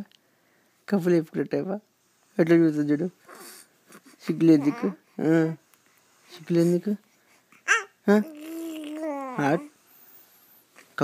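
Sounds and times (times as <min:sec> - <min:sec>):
infant cooing: 0:03.3 - 0:05.0, 0:07.5 - 0:09.8.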